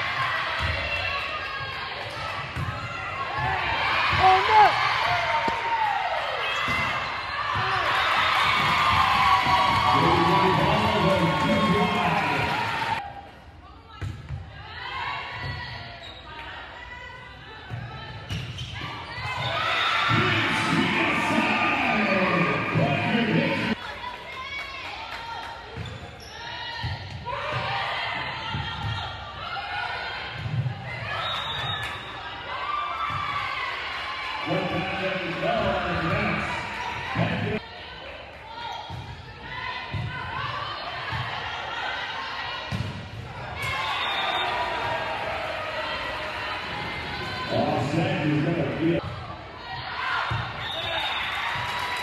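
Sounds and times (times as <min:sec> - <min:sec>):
voices in echoing gym: 0:00.0 - 0:52.0.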